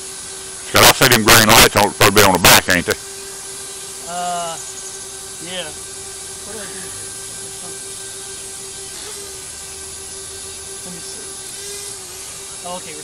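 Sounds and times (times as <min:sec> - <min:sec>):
drone propellers buzzing: 0:00.0 - 0:13.0.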